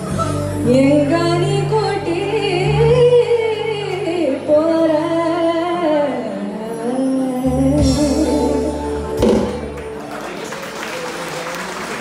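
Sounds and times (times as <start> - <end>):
audience applauding: 9.7 - 12.0.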